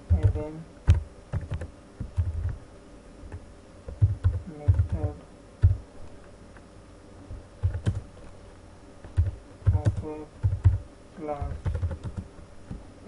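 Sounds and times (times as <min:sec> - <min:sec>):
typing on computer keyboard: 0:00.1 - 0:02.6, 0:03.9 - 0:05.8, 0:07.6 - 0:08.0, 0:09.0 - 0:10.8, 0:11.5 - 0:12.3.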